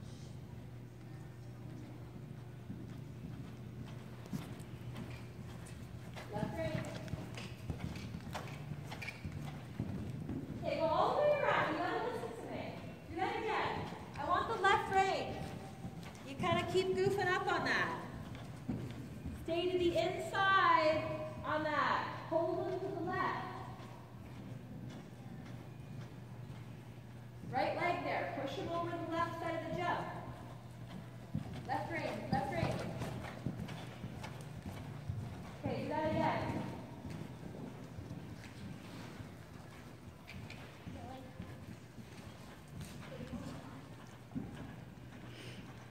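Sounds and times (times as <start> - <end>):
horse hoofbeats on sand: 2.2 - 45.9.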